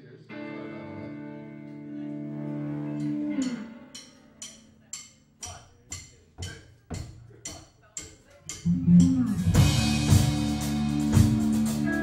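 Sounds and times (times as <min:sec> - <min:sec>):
sharp drum stick clicks: 0:03.4 - 0:09.6.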